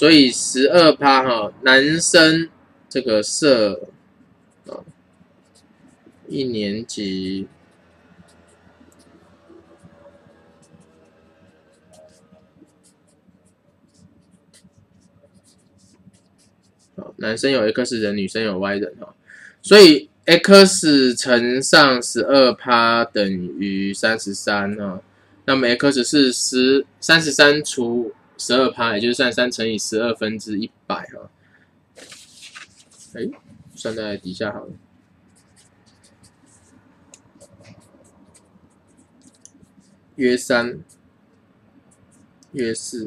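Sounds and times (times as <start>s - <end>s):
marker pen scratching paper: 3.4s - 17.0s, 32.0s - 41.0s.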